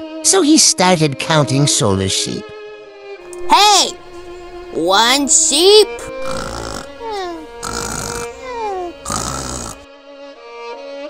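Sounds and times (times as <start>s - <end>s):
cartoon snoring with whistle: 3.4s - 9.8s.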